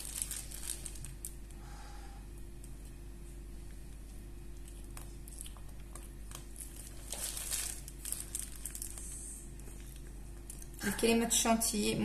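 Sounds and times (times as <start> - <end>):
plastic piping bag crinkling: 0.0 - 1.6, 4.7 - 11.4
steady low hum: 0.0 - 12.0.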